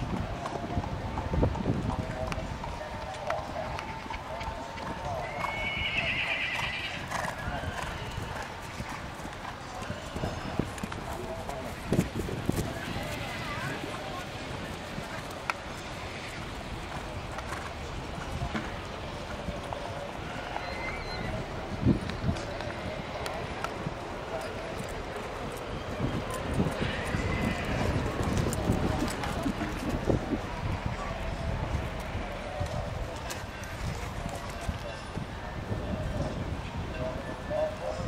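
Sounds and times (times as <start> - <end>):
horse hoofbeats on grass: 3.0 - 20.0.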